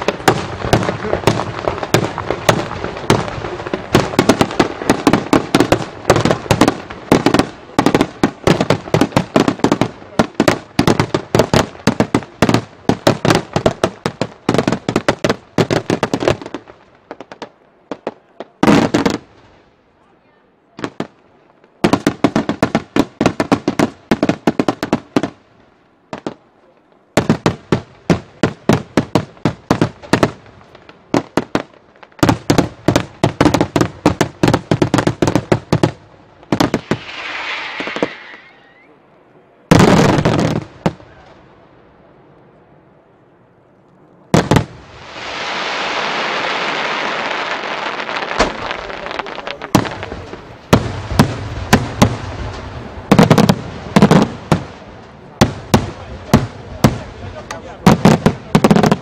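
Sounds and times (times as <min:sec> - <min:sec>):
fireworks bursting: 0:00.0 - 0:19.7, 0:20.8 - 0:39.0, 0:39.7 - 0:41.6, 0:44.3 - 0:59.0.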